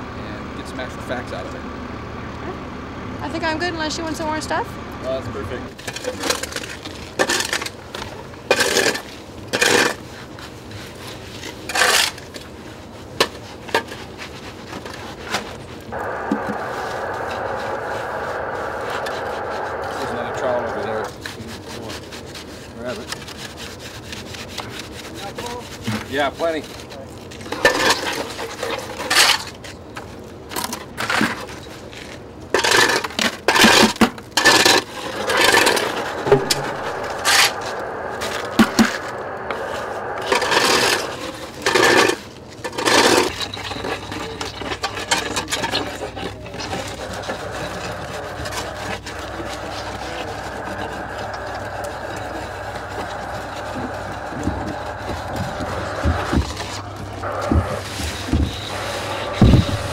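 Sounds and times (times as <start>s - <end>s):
steady background noise: 0.0s - 59.9s.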